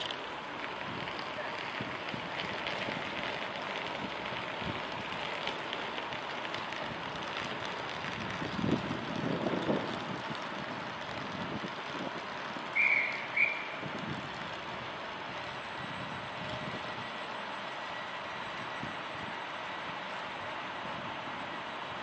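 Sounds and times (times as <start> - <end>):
steam train rumble: 0.0 - 22.0
wind noise: 6.1 - 17.1
short high-pitched whistle peeps: 12.8 - 13.8.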